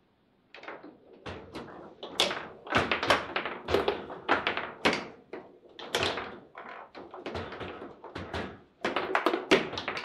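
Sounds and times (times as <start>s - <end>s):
foosball knocks and clacks: 0.5s - 10.0s.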